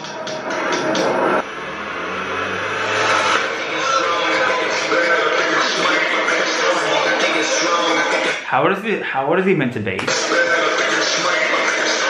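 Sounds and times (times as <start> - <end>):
car engine running: 1.0 - 5.6.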